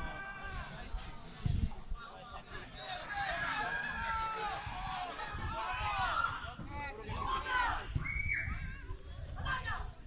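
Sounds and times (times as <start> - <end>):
people shouting: 0.0 - 0.8, 2.8 - 8.5
wind rumble on microphone: 0.6 - 2.0, 4.6 - 10.0.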